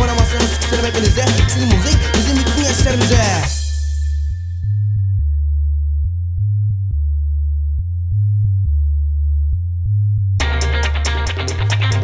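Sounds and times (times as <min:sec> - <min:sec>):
deep bassline: 0:00.0 - 0:12.0.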